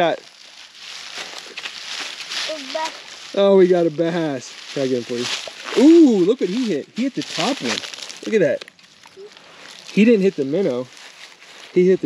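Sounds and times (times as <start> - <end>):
dry grass crackling underfoot: 0.0 - 12.0.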